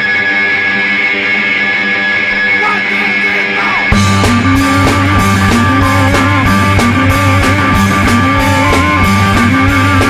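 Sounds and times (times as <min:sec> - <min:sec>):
electric guitar droning chord: 0:00.0 - 0:10.0.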